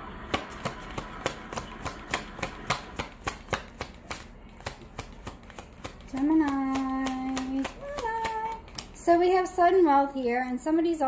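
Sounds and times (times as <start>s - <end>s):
cards shuffled by hand: 0.3s - 9.0s.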